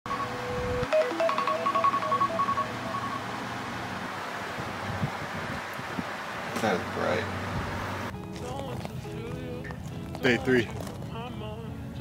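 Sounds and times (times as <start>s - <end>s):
electronic beeps: 0.1s - 3.4s.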